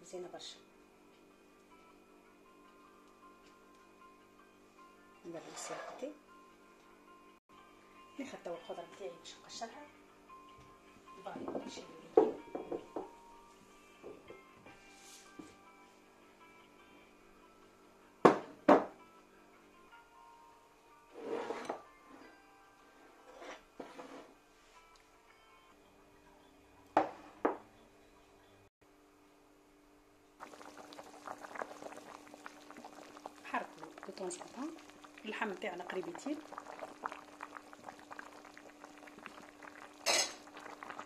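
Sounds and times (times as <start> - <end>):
soft background music: 0.0 - 28.7, 30.1 - 41.0
ceramic dishes on wooden countertop: 5.3 - 6.2, 21.1 - 24.4, 27.0 - 27.8, 40.0 - 40.4
broth bubbling at a boil: 30.4 - 41.0.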